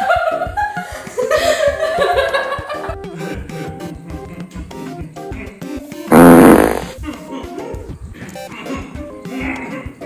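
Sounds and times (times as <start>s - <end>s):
background music: 0.0s - 10.0s
comedy fart sound effect: 6.1s - 7.0s.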